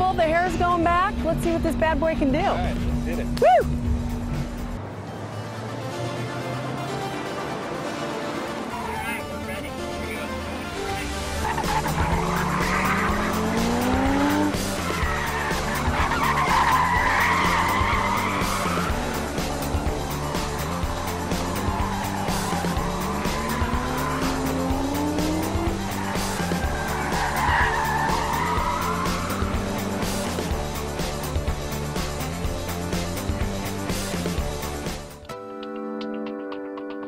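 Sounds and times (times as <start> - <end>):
car engine revving: 0.0 - 35.2
background music: 0.0 - 37.0
tyres squealing: 11.0 - 30.5.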